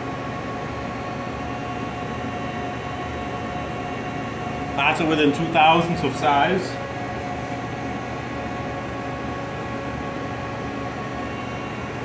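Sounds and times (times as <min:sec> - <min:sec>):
idle milling machine humming: 0:00.0 - 0:12.0
faint whining tones: 0:01.5 - 0:12.0.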